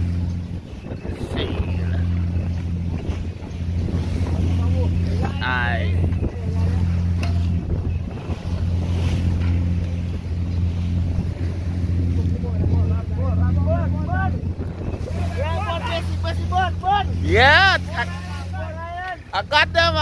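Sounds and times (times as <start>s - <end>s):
boat engine droning: 0.0s - 20.0s
seabirds calling: 0.0s - 20.0s
waves splashing at bow: 0.0s - 20.0s
wind: 0.0s - 20.0s.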